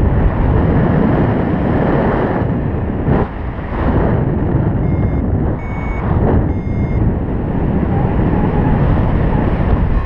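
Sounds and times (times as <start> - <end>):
wind rush on microphone: 0.0 - 10.0
variometer beeping: 4.7 - 7.2.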